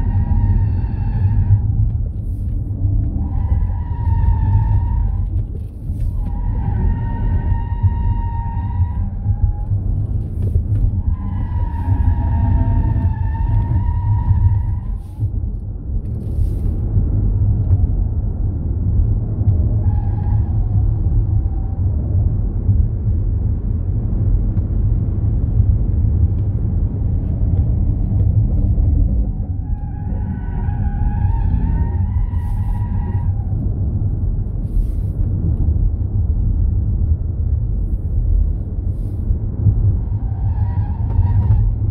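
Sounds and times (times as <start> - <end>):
tires squealing: 0.0 - 15.4, 19.6 - 21.9, 26.9 - 33.9, 38.9 - 41.9
road and wind noise: 0.0 - 41.9.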